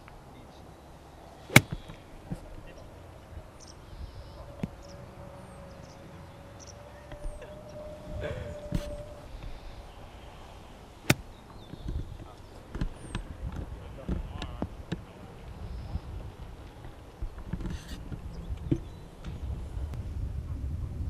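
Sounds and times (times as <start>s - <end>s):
golf club striking ball: 1.5s - 2.0s, 11.1s - 11.3s
wind rumble on microphone: 2.4s - 21.0s.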